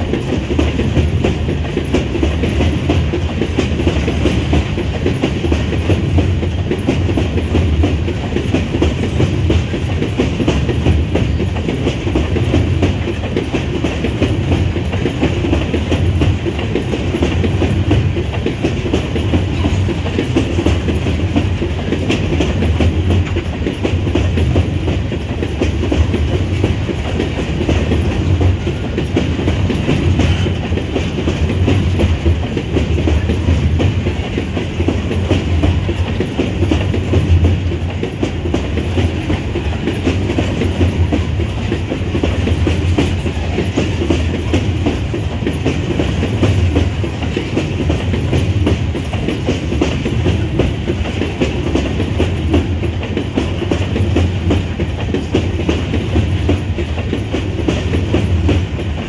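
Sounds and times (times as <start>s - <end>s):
freight train rumbling past: 0.0s - 59.0s
wheels clattering on rails: 0.0s - 59.0s.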